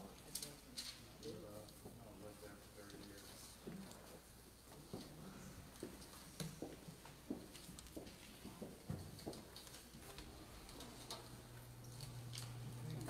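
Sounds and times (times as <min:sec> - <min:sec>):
knocks and taps of people moving: 0:03.0 - 0:10.9
low steady hum: 0:10.0 - 0:13.0.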